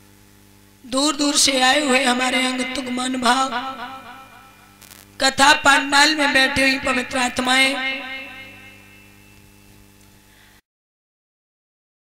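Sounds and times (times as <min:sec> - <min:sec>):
electrical mains hum: 0:00.0 - 0:10.6
sustained tones: 0:01.7 - 0:09.8.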